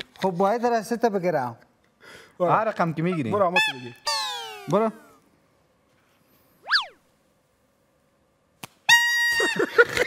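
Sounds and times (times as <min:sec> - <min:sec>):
sliding whistle-like tone: 0:06.6 - 0:07.0.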